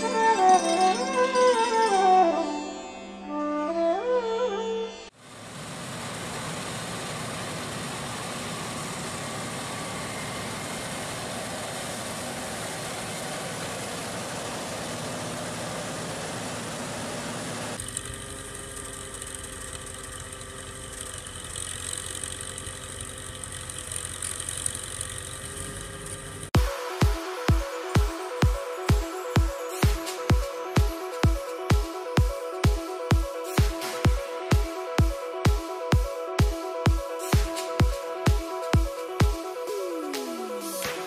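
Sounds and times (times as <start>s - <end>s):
dense machine noise: 5.2s - 40.2s
tractor diesel engine running: 5.2s - 41.0s.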